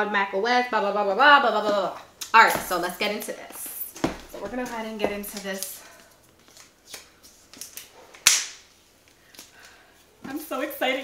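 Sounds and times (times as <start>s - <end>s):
cardboard rustling: 4.0s - 5.7s
sharp crack: 7.7s - 8.7s.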